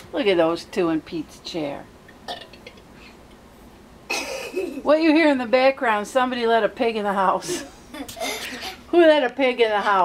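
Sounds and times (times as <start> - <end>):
person belching faintly: 2.3 - 2.8.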